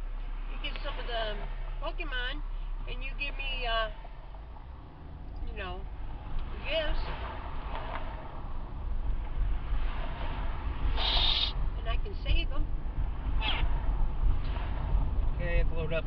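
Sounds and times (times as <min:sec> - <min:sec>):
car road and engine rumble: 0:00.0 - 0:16.0
short hiss: 0:11.0 - 0:11.6.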